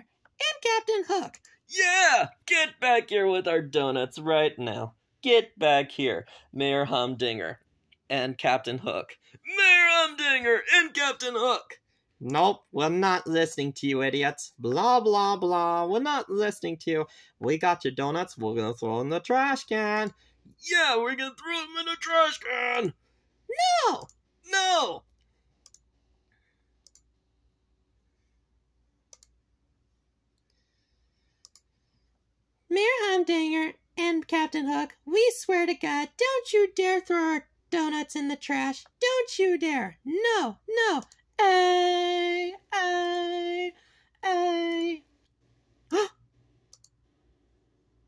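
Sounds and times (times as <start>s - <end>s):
computer mouse clicks: 25.1s - 25.9s, 26.8s - 27.1s, 29.1s - 29.4s, 31.4s - 31.7s, 46.7s - 47.0s.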